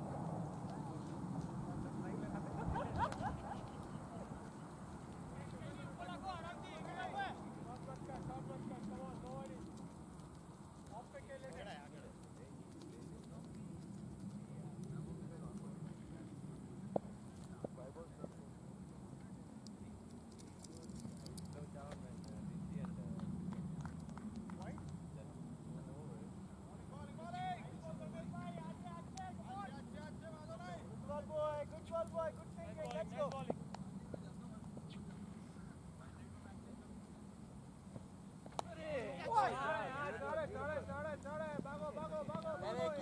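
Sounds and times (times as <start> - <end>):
steady low rumble: 0.0 - 11.3
distant players calling out: 38.5 - 43.0.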